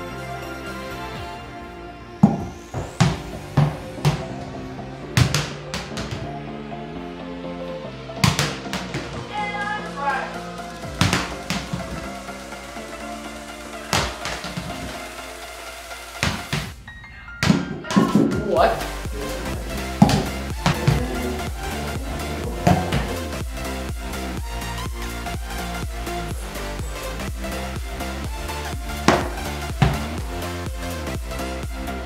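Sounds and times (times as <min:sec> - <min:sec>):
background music: 0:00.0 - 0:32.0
ball bouncing on hardwood floor: 0:02.2 - 0:04.4, 0:05.2 - 0:06.3, 0:08.2 - 0:09.3, 0:11.0 - 0:12.1, 0:13.9 - 0:15.0, 0:16.2 - 0:16.8, 0:20.0 - 0:21.6, 0:22.5 - 0:23.2, 0:29.0 - 0:30.2.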